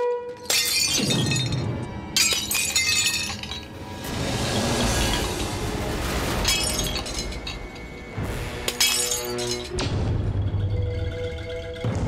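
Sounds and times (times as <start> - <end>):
glass bottles smashing: 0.4 - 9.8
dramatic film music: 3.6 - 12.0.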